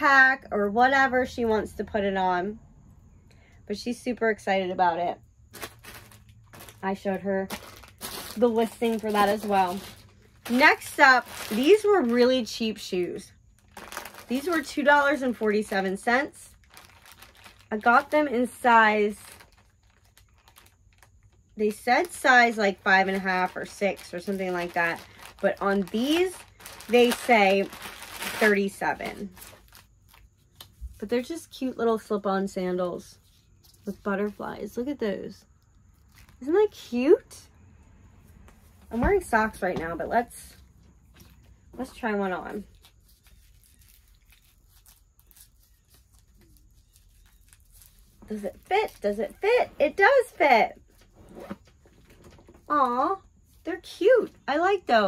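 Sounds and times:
woman speaking: 0.0 - 2.6, 3.7 - 5.2, 6.8 - 7.6, 8.3 - 13.3, 14.3 - 16.5, 17.7 - 19.3, 21.6 - 29.4, 31.0 - 33.2, 33.9 - 35.4, 36.4 - 37.5, 38.9 - 40.6, 41.8 - 42.7, 48.3 - 50.8, 52.7 - 55.0.

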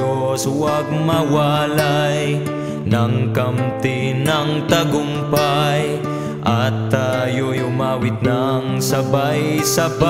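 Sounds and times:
person singing: 0.0 - 10.0.

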